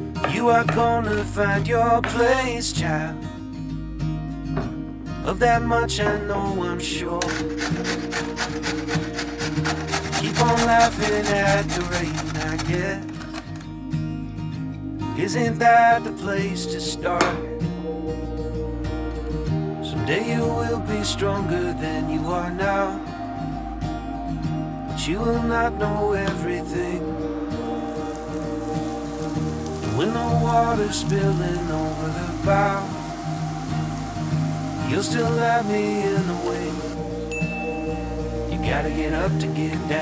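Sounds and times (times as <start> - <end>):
background song: 0.0 - 40.0
carrot grated on metal grater: 7.2 - 13.6
butter sizzling in frying pan: 27.4 - 37.0.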